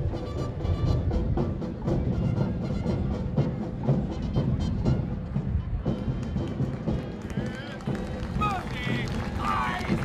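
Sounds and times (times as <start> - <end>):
military band music with drums: 0.0 - 10.0
marching feet: 1.8 - 10.0.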